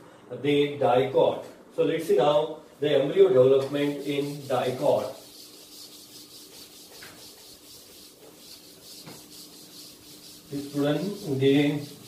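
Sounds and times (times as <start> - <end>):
board duster rubbing chalkboard: 3.7 - 12.0.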